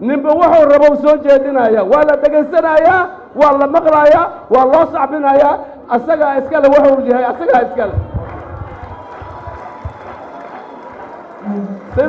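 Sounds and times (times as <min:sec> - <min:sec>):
speech: 0:00.0 - 0:08.0
audience applauding: 0:08.0 - 0:12.0.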